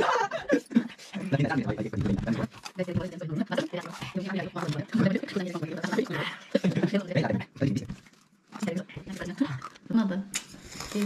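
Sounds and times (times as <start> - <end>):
people talking: 0.0 - 8.0, 8.6 - 10.3.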